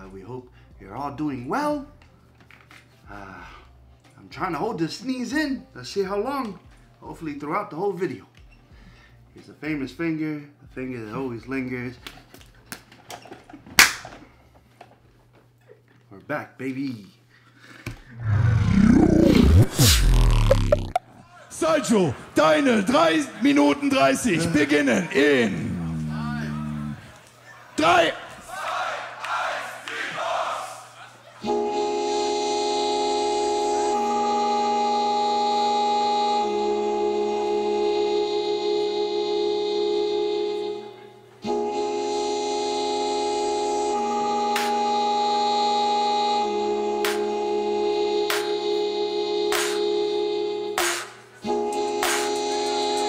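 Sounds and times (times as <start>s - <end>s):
looped synth chord: 18.2s - 21.0s, 31.4s - 50.8s, 51.4s - 53.0s
crowd shouting and cheering: 27.0s - 31.2s.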